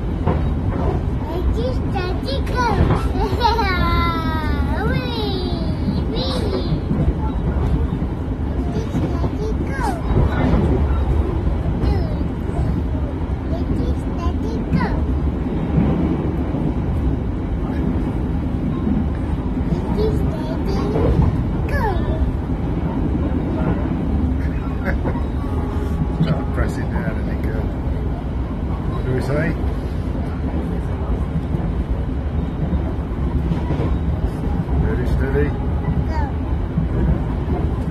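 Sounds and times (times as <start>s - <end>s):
train carriage rumble: 0.0s - 37.9s
faint voices: 0.3s - 37.9s.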